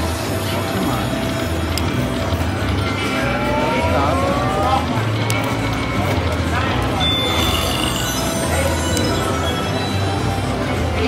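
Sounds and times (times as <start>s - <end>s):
slot machine bonus music: 0.1s - 11.0s
rising tones: 2.6s - 6.0s, 6.8s - 10.6s.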